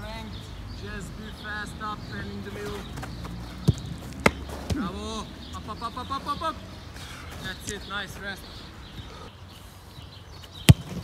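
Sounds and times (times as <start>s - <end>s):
faint background noise: 0.0s - 11.0s
football being kicked: 3.0s - 4.9s, 10.7s - 11.0s.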